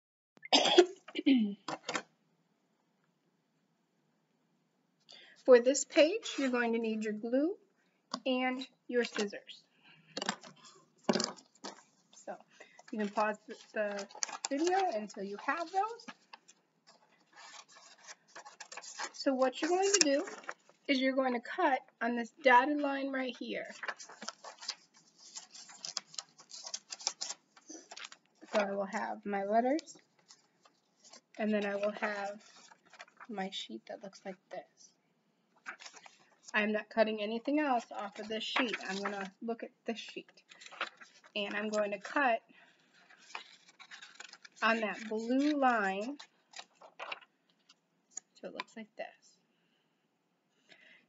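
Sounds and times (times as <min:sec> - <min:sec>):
woman coughing: 0:00.5 - 0:01.6
woman clearing her throat: 0:00.5 - 0:01.7
scissors cutting paper: 0:12.9 - 0:20.5, 0:23.8 - 0:28.6, 0:43.1 - 0:47.2.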